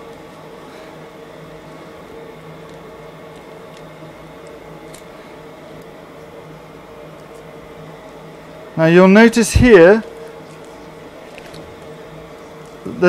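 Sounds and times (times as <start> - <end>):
fan hum with low tones: 0.0 - 13.0.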